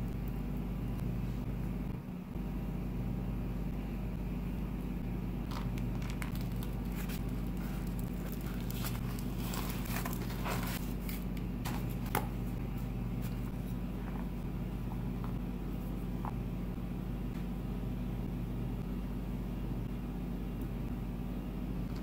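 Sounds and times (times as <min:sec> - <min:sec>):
steady low hum: 0:00.0 - 0:22.0
tortillas rustling and crackling: 0:05.5 - 0:12.5.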